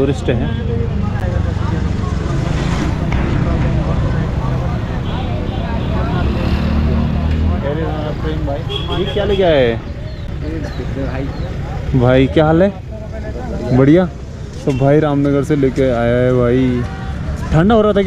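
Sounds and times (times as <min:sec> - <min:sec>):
motorcycle engines idling: 0:07.2 - 0:18.0.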